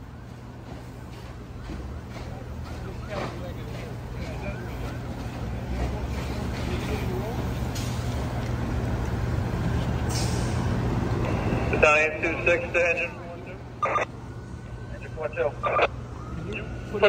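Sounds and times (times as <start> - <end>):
diesel engines rumbling: 0.0 - 17.0.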